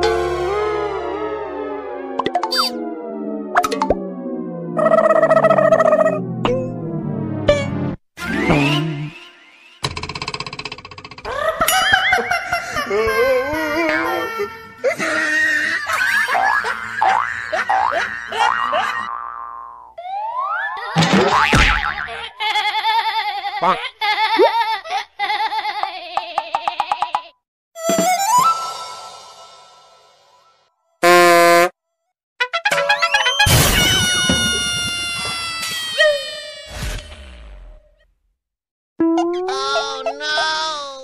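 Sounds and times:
descending comedy tone: 0.0 - 9.7, 18.4 - 22.2, 39.0 - 41.0
cartoon boings: 4.7 - 10.8, 19.1 - 22.1, 39.0 - 40.2.

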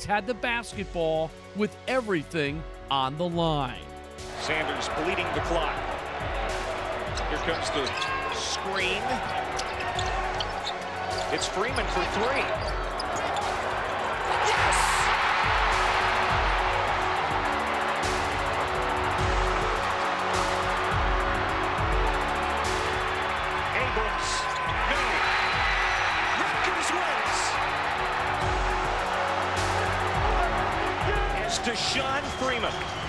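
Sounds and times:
background music with low beat: 0.0 - 33.0
arena crowd cheering: 4.2 - 33.0.

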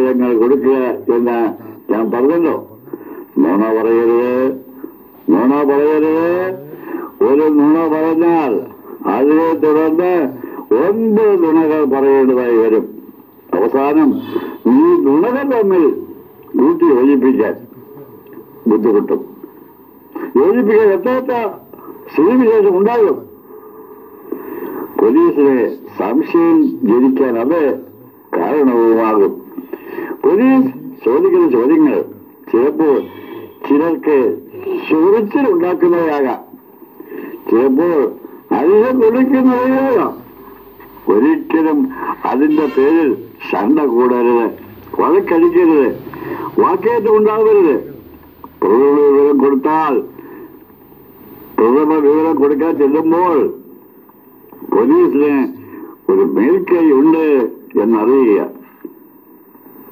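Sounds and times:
man talking: 0.0 - 19.5, 20.1 - 23.5, 24.7 - 36.5, 37.1 - 53.7, 54.5 - 58.6
man speaking: 0.0 - 23.5, 24.8 - 36.5, 37.1 - 53.8, 54.4 - 58.6.

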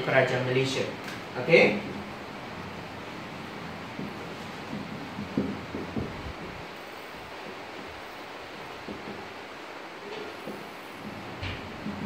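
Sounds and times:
background hiss: 0.0 - 12.0
marker tapping on whiteboard: 4.0 - 6.2, 8.8 - 9.3, 10.4 - 12.0.

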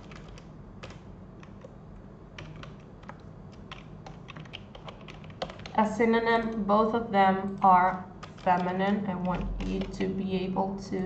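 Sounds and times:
keystrokes on computer keyboard: 0.0 - 1.8, 2.4 - 6.7, 7.4 - 10.1
faint low hum: 0.0 - 11.0.

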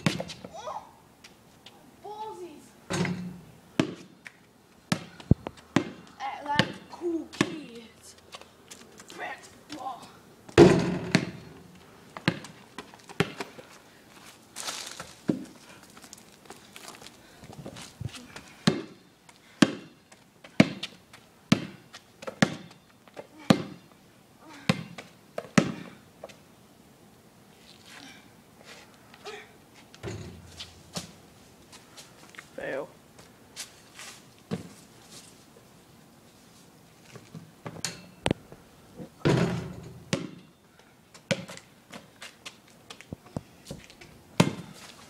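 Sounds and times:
basketball bouncing on asphalt: 0.0 - 0.5, 3.0 - 7.8, 10.5 - 13.7, 18.3 - 23.9, 24.6 - 26.4, 34.5 - 34.8, 39.2 - 40.5, 41.1 - 43.1, 43.7 - 44.9.

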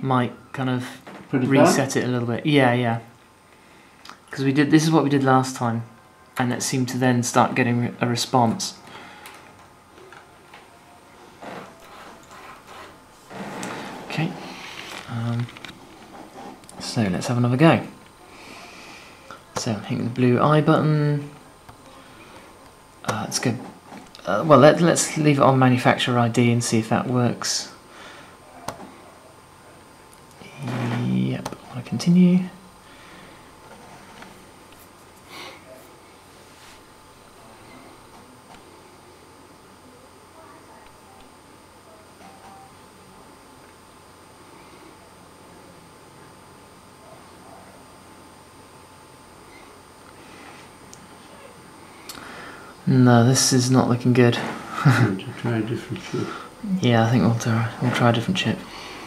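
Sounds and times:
thin high whine: 0.0 - 3.0, 4.4 - 59.0
faint rubbing and scraping: 11.2 - 15.1, 33.6 - 34.4.

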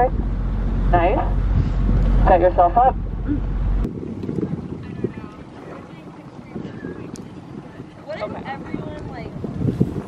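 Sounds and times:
waves lapping against a hull: 0.0 - 10.0
wind on microphone: 0.0 - 10.0.

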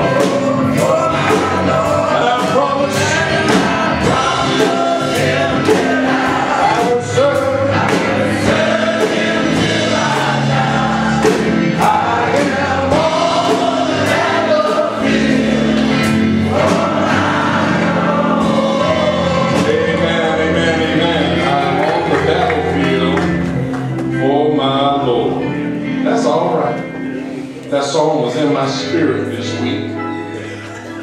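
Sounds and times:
steady beat: 0.0 - 24.0
gospel choir singing: 0.0 - 26.6.

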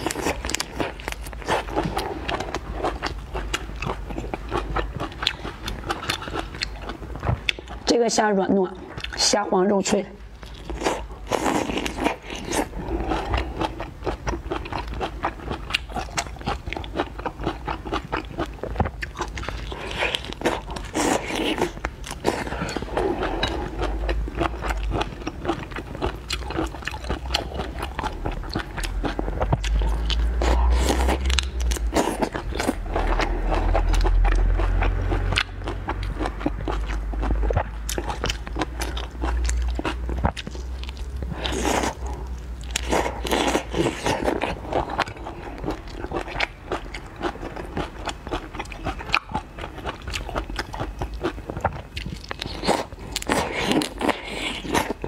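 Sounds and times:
crunching prawn shells: 0.0 - 7.9, 10.4 - 55.0
low rumble: 27.7 - 42.6.

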